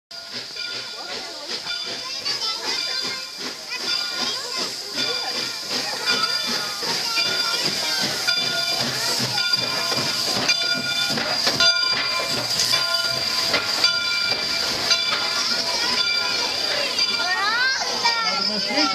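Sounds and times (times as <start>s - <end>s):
steam hissing: 0.1s - 18.9s
steam locomotive passing: 0.1s - 18.9s.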